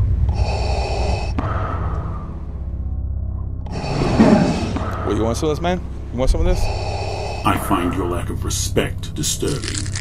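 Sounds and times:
steady low rumble: 0.0 - 7.4
mechanical respirator breathing: 0.2 - 2.4, 3.7 - 5.1, 6.4 - 7.7.

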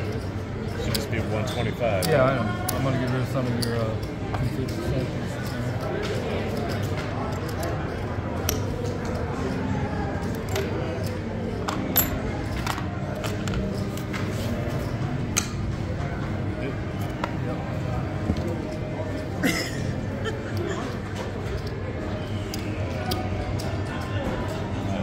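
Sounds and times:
murmur of voices: 0.0 - 25.0.

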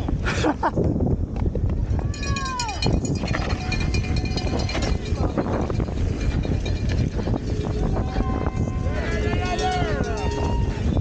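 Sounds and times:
wind on microphone: 0.0 - 11.0
bike rattling on dirt trail: 1.8 - 9.9.

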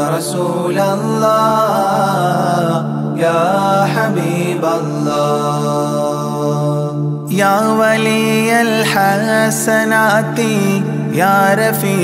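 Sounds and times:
low drone: 0.0 - 12.0
person singing ornamented melody: 0.0 - 12.0.

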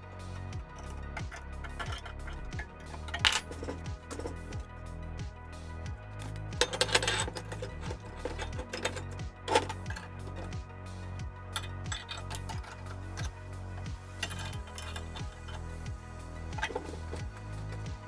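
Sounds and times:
background music with low beat: 0.0 - 18.0
steel parts clinking: 0.8 - 4.6, 6.2 - 10.6, 11.5 - 18.0.

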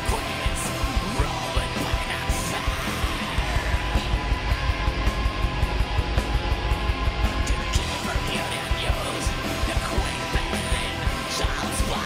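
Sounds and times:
distorted electric guitars: 0.0 - 12.0
rapid driving drumming: 0.0 - 12.0.

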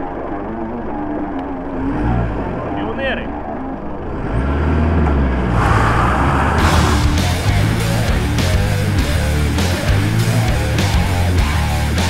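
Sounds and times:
diesel engine rumbling: 0.0 - 12.0.

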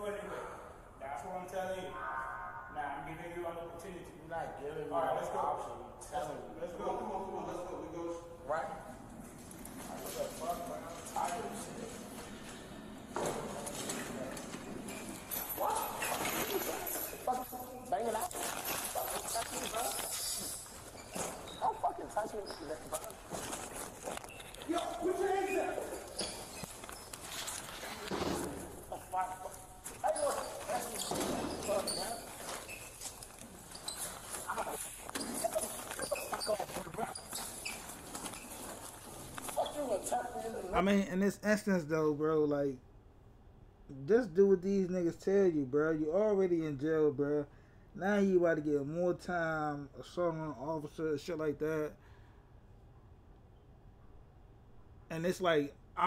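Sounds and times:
muffled voices: 0.0 - 20.6.

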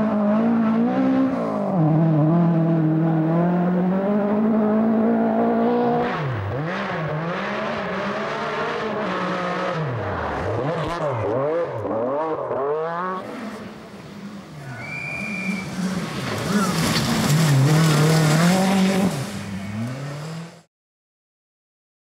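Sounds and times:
rally car engines revving: 0.0 - 20.7
short high whistle tone: 14.7 - 15.7.

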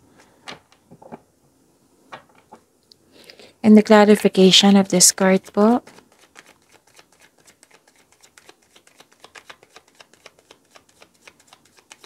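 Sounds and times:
cards being shuffled: 5.1 - 12.0.

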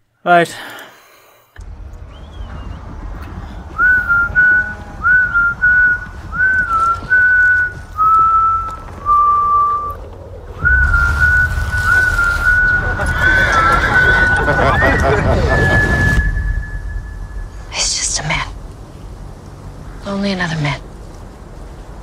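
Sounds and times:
low steady rumble: 1.6 - 22.0
person whistling a slow tune: 3.7 - 10.0, 10.6 - 17.5.

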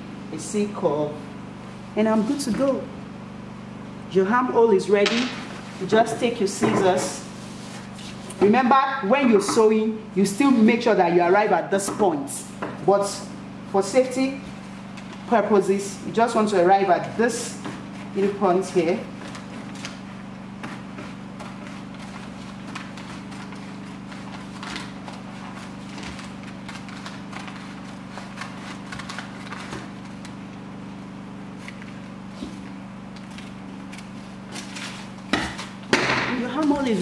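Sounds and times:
steady low hum: 0.0 - 37.0
paper rustling: 7.2 - 8.4, 17.7 - 30.5, 31.5 - 35.8.

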